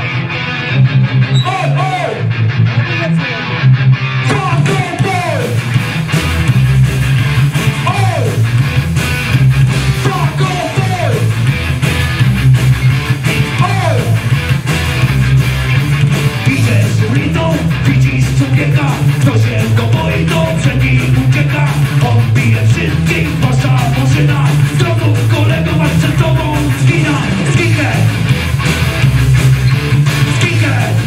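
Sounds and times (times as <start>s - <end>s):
bass guitar: 0.0s - 31.0s
distorted electric guitars: 0.0s - 31.0s
drums with cymbals: 5.5s - 10.4s.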